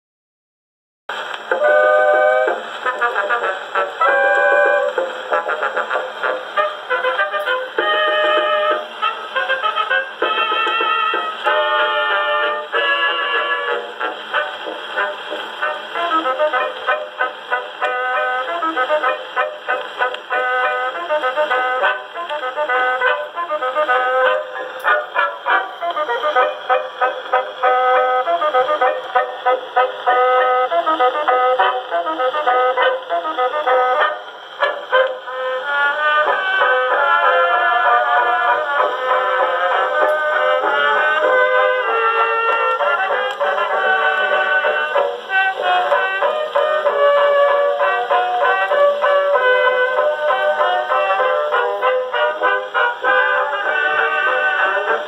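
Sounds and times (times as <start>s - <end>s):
dance orchestra on phonograph: 1.1s - 55.0s.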